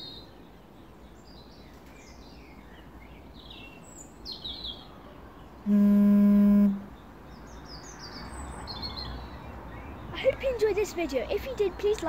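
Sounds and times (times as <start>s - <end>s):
loud low buzz: 5.7s - 6.9s.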